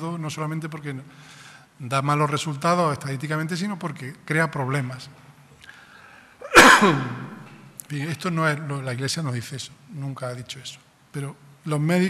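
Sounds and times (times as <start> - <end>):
man sneezing: 6.4 - 7.4.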